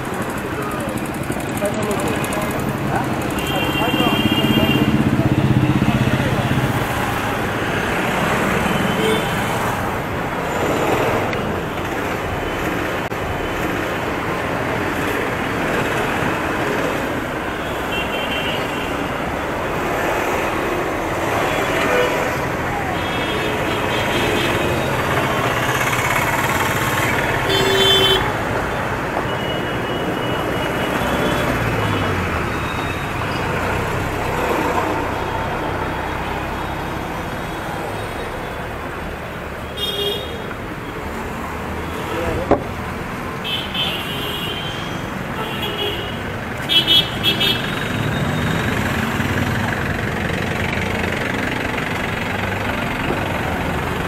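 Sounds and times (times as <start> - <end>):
road traffic passing: 0.0 - 54.0
car horns honking: 27.4 - 28.4.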